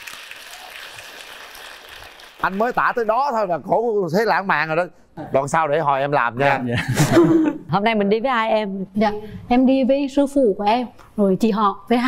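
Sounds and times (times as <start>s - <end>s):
audience applauding: 0.0s - 3.4s.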